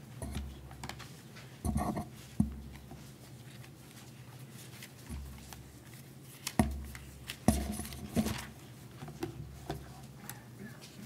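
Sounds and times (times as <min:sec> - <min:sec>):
pages rustling: 0:02.7 - 0:08.7.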